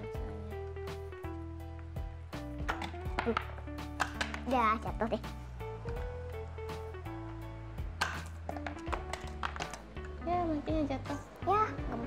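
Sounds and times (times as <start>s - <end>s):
light instrumental music: 0.0s - 12.0s.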